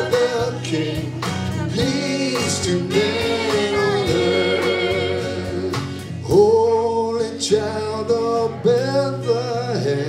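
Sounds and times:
man singing slow song: 0.0s - 10.0s
strummed acoustic guitar: 0.0s - 10.0s.

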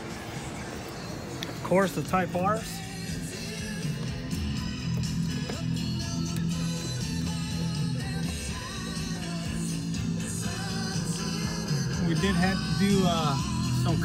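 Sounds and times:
rock and roll song on car stereo: 0.0s - 14.0s.

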